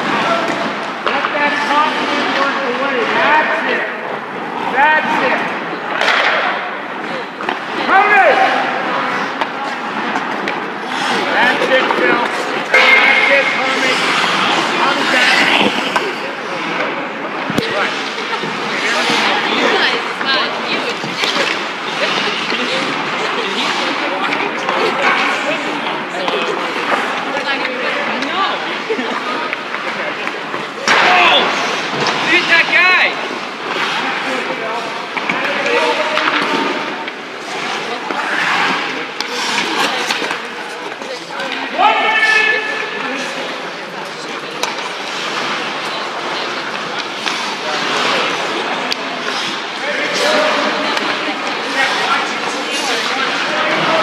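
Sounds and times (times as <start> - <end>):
indistinct voices echoing: 0.0 - 54.0
skates scraping on ice: 0.0 - 54.0
sticks and pucks knocking: 5.9 - 6.5, 35.0 - 41.6, 44.6 - 45.6
people calling out: 10.8 - 16.7.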